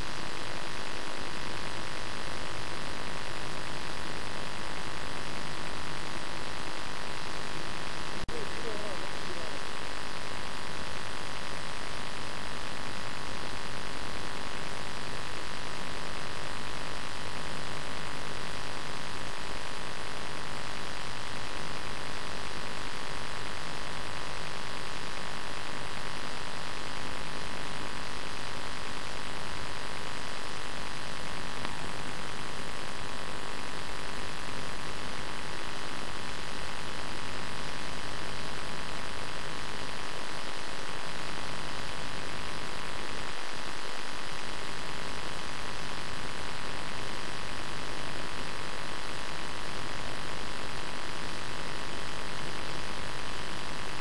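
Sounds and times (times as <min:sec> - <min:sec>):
tape hiss with buzzing hum: 0:00.0 - 0:54.0.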